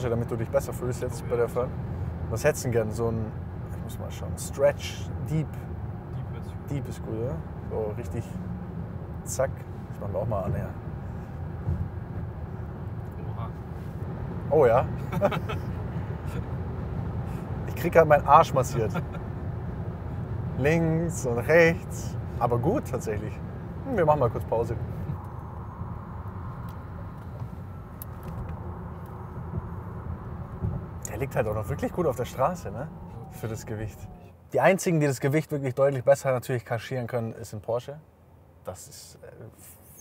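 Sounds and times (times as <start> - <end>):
road rumble inside car cabin: 0.0 - 35.4.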